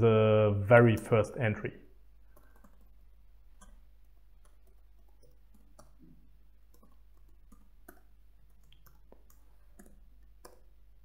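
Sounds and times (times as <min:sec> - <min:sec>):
computer keyboard keystrokes: 0:02.3 - 0:03.0, 0:04.4 - 0:06.0, 0:06.7 - 0:10.7.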